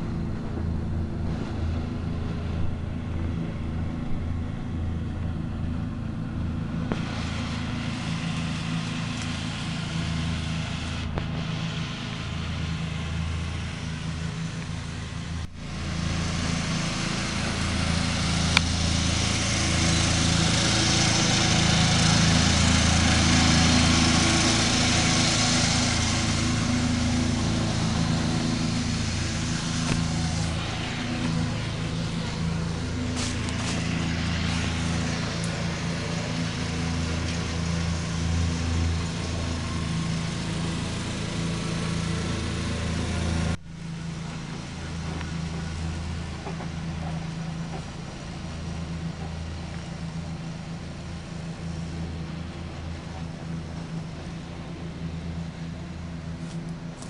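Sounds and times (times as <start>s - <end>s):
ride-on mower engine cutting grass: 0.0s - 57.0s.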